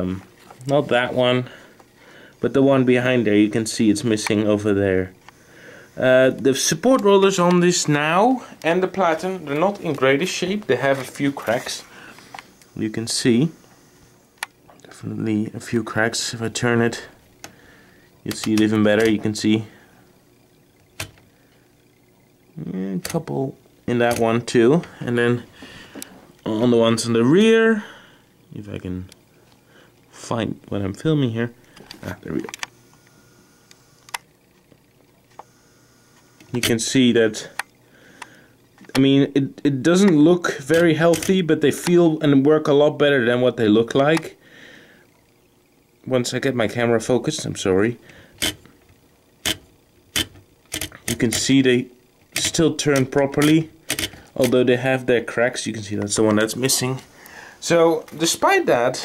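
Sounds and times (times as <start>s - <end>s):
typewriter carriage clicks: 50.2s - 51.5s, 52.4s - 54.6s.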